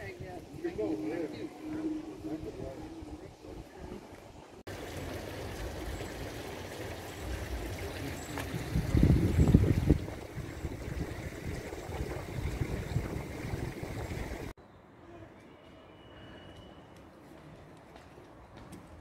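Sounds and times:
fountain water splashing: 0:04.7 - 0:14.5.

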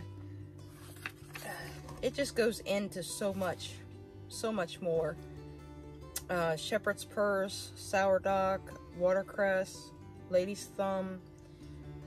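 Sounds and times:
acoustic guitar music: 0:00.0 - 0:12.0
book page turning: 0:00.6 - 0:02.2.

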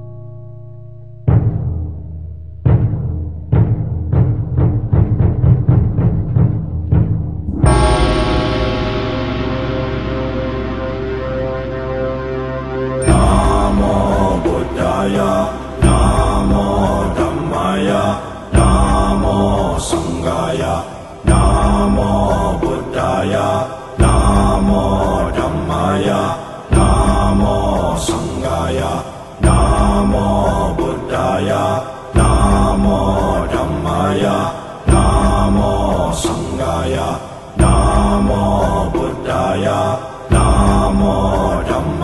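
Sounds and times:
chanted mantra over looping music: 0:07.6 - 0:42.0.

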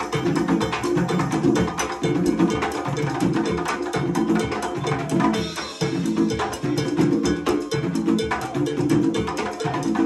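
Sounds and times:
conga drums: 0:00.0 - 0:10.0
cowbell: 0:00.0 - 0:10.0.

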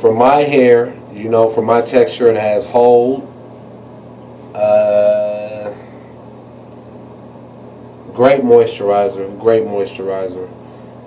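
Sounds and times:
faint low hum: 0:00.0 - 0:11.0
man saying uh: 0:04.6 - 0:05.9.

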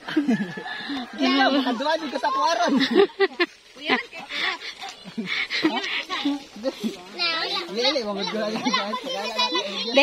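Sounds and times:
people talking: 0:00.2 - 0:10.0
children's voices: 0:01.0 - 0:10.0.

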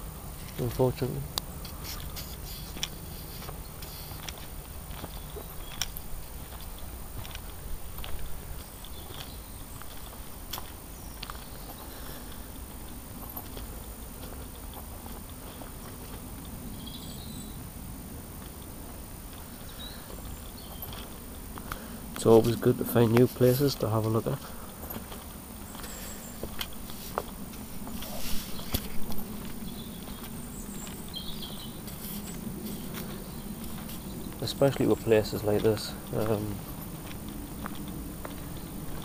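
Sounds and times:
footsteps on leaf litter: 0:00.4 - 0:16.6, 0:18.4 - 0:39.0.

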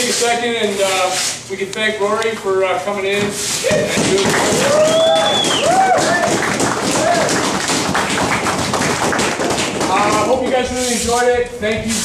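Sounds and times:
group applauding: 0:03.7 - 0:10.4.

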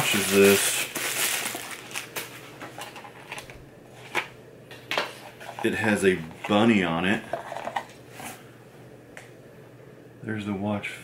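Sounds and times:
plastic bag crinkling: 0:00.0 - 0:03.3.

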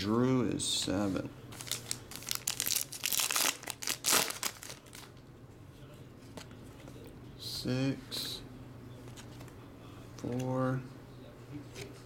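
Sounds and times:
foil wrapper crinkling: 0:01.5 - 0:05.2.

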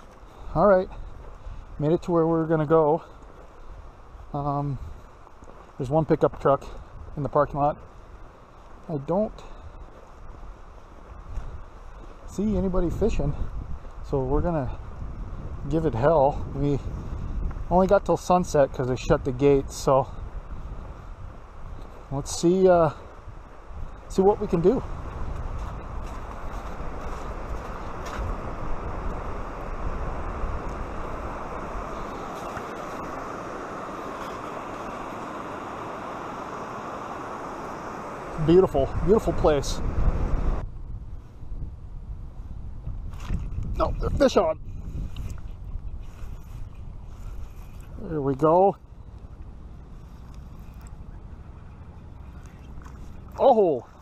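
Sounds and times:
wind rumbling on microphone: 0:00.0 - 0:54.0
stream rushing over weir: 0:26.2 - 0:40.6.

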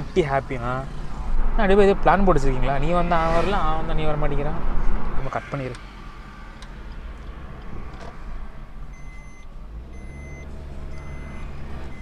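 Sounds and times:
car cabin engine and road rumble: 0:00.0 - 0:12.0
electronic warning beep: 0:08.9 - 0:12.0.

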